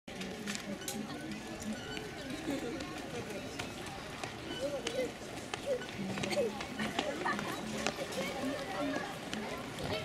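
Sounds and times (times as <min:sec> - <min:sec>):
distant chatter of voices: 0:00.1 - 0:10.0.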